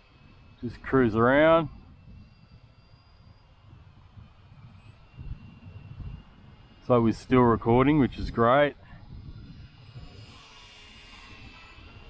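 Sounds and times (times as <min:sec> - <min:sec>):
drone motors whining: 0:00.0 - 0:12.0
wind rumble on microphone: 0:00.0 - 0:12.0.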